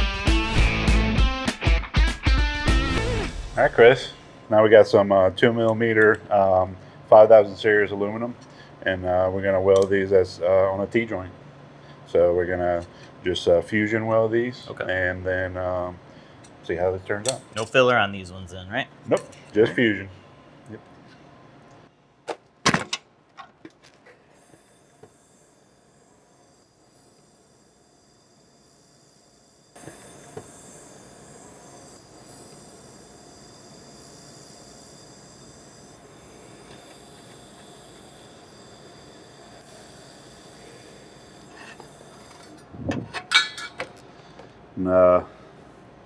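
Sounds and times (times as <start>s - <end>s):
laser welder hissing: 0.0s - 15.9s, 24.0s - 45.6s
metal clinks: 42.4s - 43.9s.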